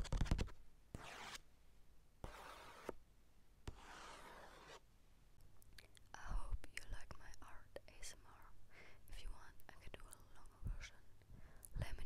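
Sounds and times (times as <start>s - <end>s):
woman whispering: 5.8s - 12.0s.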